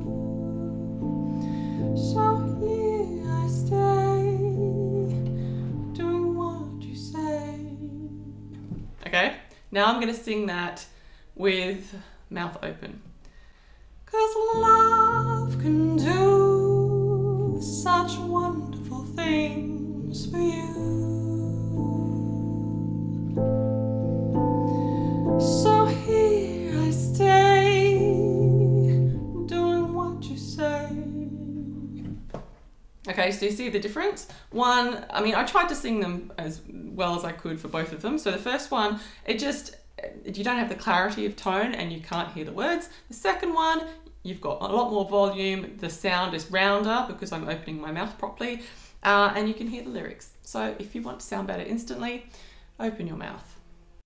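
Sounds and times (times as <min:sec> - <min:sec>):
woman singing: 0:00.0 - 0:08.6, 0:14.1 - 0:23.2, 0:24.8 - 0:32.2
keyboard chords: 0:00.0 - 0:09.0, 0:14.4 - 0:32.3.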